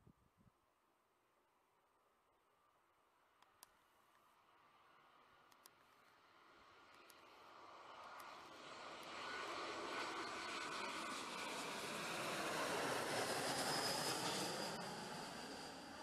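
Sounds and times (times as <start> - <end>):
jet engine high whine: 4.4 - 16.0
jet airliner passing overhead: 6.0 - 16.0.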